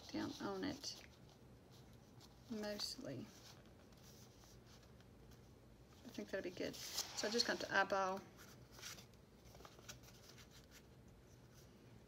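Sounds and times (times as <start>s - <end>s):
person speaking: 0.0s - 1.1s, 2.4s - 3.6s, 6.0s - 8.4s
paper rustling: 0.0s - 11.7s.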